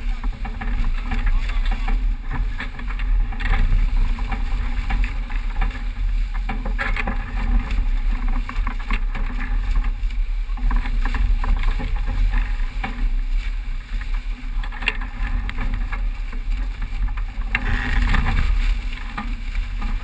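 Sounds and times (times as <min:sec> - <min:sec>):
water rushing along hull: 0:00.0 - 0:20.0
water splashes: 0:00.0 - 0:20.0
wind buffeting microphone: 0:00.0 - 0:20.0.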